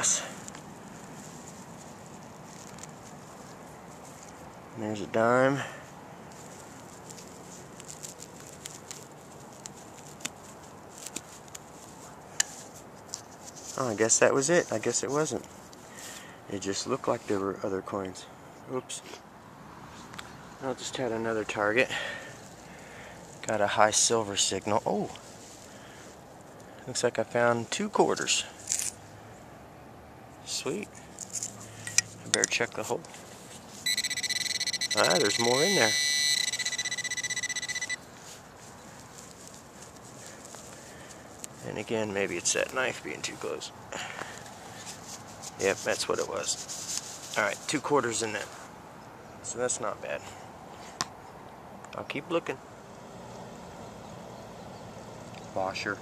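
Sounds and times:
fingers rustling through grass and soil: 0.0s - 16.2s, 22.3s - 29.0s, 30.4s - 48.7s
small crackles and clicks: 6.3s - 13.2s
high electronic tone: 33.9s - 38.0s.

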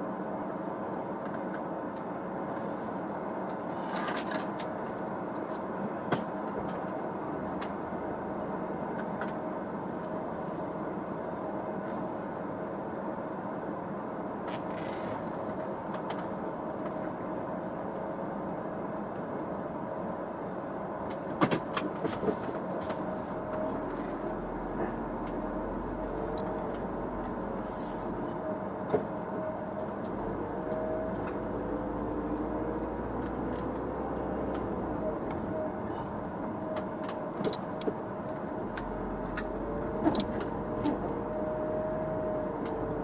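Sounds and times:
road noise: 0.0s - 43.0s
car engine hum: 4.3s - 43.0s.

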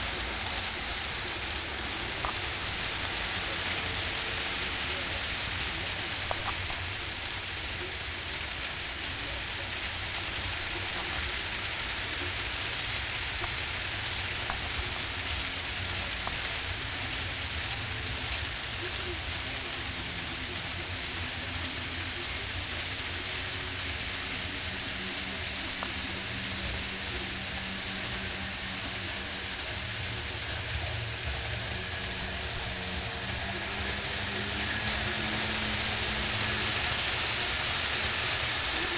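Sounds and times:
steady hiss: 0.0s - 38.9s.

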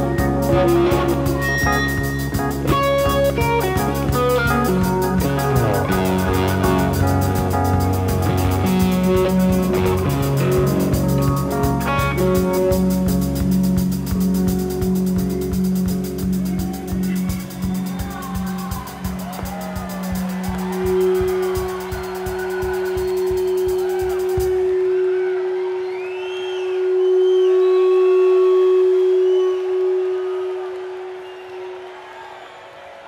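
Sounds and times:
drum beat: 0.0s - 24.7s
rock band playing: 0.0s - 25.8s
crowd cheering and whooping: 16.1s - 33.0s
long held note: 23.9s - 31.9s.

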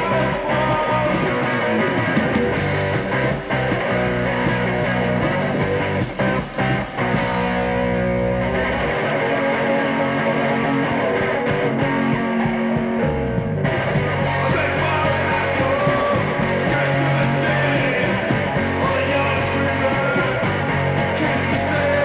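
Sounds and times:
punk rock band playing live: 0.0s - 22.0s.

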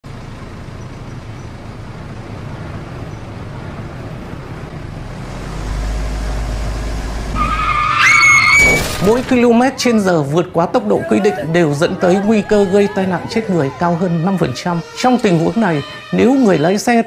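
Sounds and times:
deep engine rumble: 0.0s - 8.0s
traffic noise: 0.0s - 17.0s
tires squealing: 5.2s - 17.0s
car crash: 6.9s - 9.7s.

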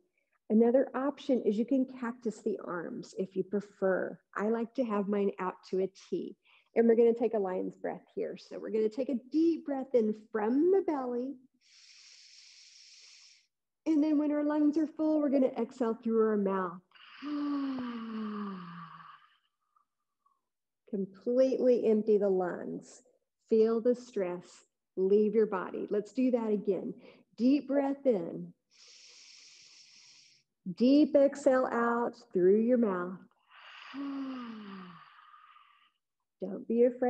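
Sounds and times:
woman exhaling breathily: 33.6s - 35.8s.

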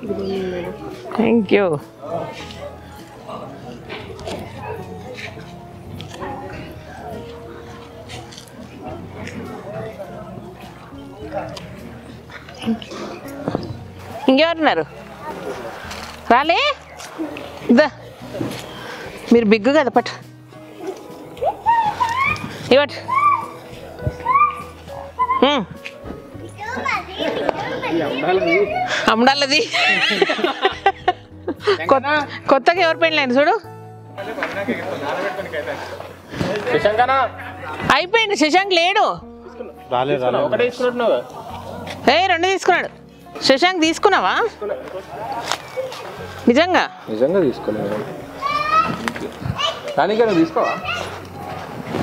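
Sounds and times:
low chatter: 0.0s - 31.8s, 33.6s - 52.0s
children talking and calling out: 20.7s - 29.1s, 45.3s - 46.4s, 48.1s - 51.7s.

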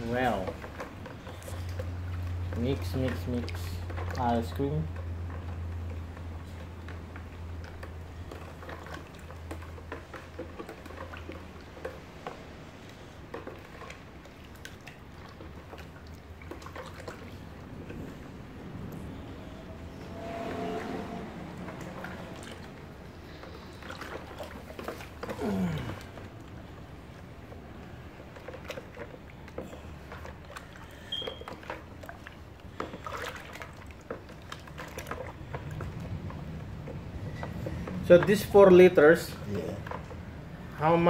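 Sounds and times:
liquid sloshing in a bucket: 0.0s - 41.0s
low steady hum: 0.0s - 41.0s.

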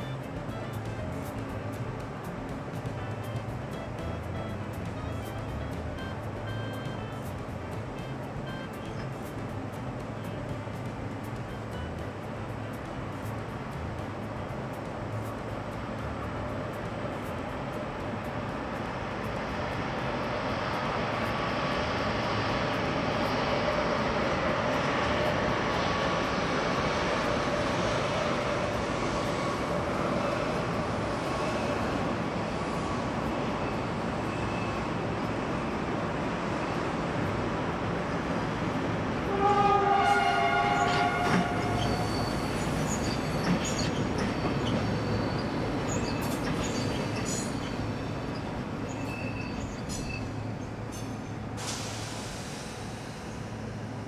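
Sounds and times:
train wheels rumbling: 0.0s - 54.0s
train horn two-note blast: 2.9s - 9.0s, 39.2s - 43.3s
thin wheel squeal: 40.8s - 52.0s.

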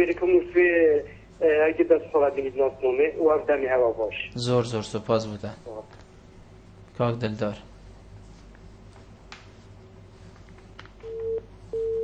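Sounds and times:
low steady hum: 0.0s - 12.0s
telephone line beeps: 11.0s - 12.0s.

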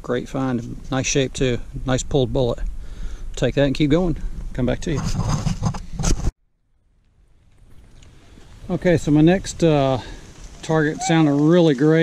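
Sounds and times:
rustling and scraping: 4.1s - 6.4s.

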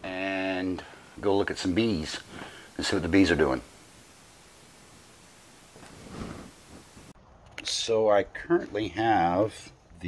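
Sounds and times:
room hiss: 0.0s - 7.2s.

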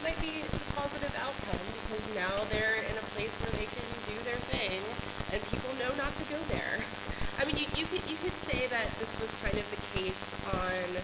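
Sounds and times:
dense crackling clicks: 0.0s - 11.0s
faint person talking: 0.0s - 11.0s.

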